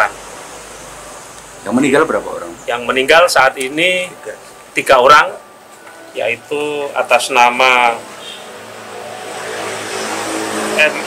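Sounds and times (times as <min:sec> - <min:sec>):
vehicle noise rush and hum: 0:08.0 - 0:11.0.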